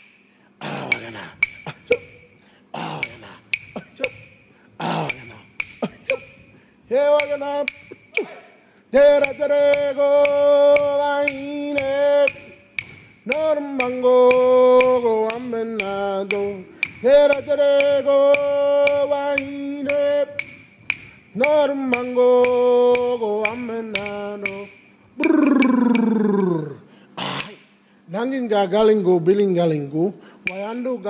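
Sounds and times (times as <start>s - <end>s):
sharp taps beat: 0.0s - 27.8s
man chanting: 21.4s - 26.8s.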